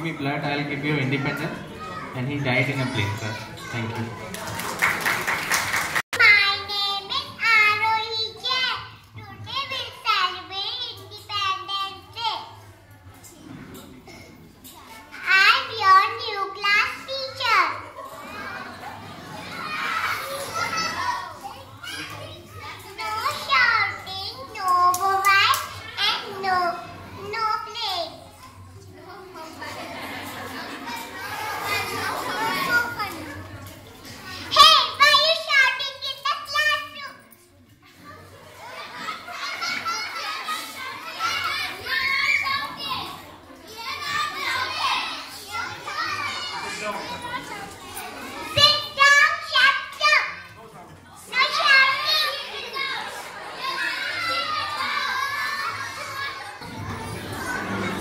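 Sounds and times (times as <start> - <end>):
young children chattering: 0.0 - 58.0
child speaking: 6.2 - 12.6, 15.2 - 17.9, 22.9 - 28.3, 34.5 - 37.3.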